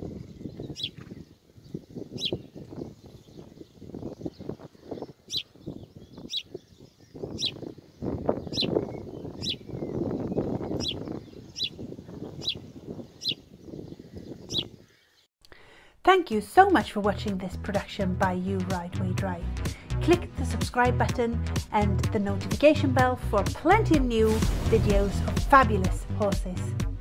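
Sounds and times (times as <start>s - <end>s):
bird chirping: 0.0s - 15.3s.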